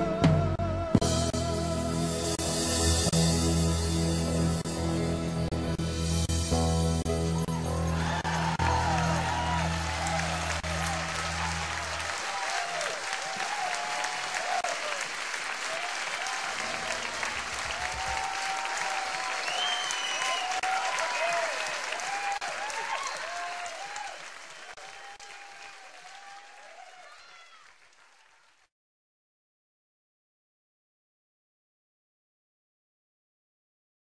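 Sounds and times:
audience applauding: 7.5 - 28.7
crowd shouts and whoops: 7.6 - 15.1, 15.7 - 27.8.

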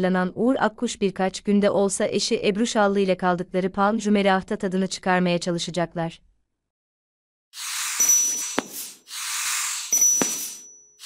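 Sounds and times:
high ding: 7.9 - 9.0, 9.9 - 11.0.

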